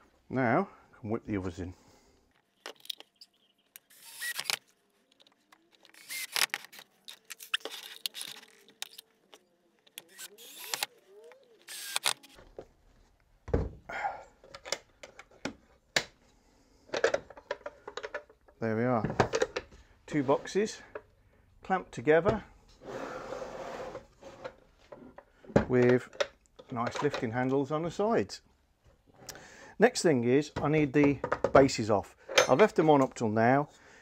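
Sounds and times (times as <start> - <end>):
cordless drill driving screws: 3.9 - 4.6, 5.8 - 6.8, 10.0 - 10.9, 11.6 - 12.4.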